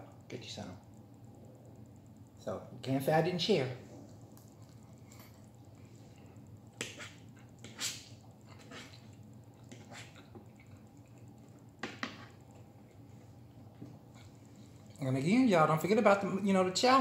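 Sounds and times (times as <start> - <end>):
room hum: 0.0 - 17.0
fork and knife scraping plate: 6.8 - 9.0.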